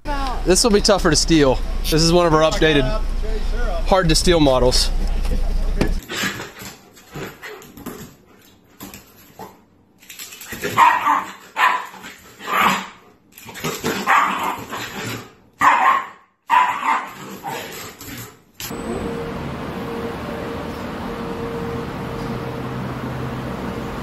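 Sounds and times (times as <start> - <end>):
dog barking excitedly: 10.5 - 17.8.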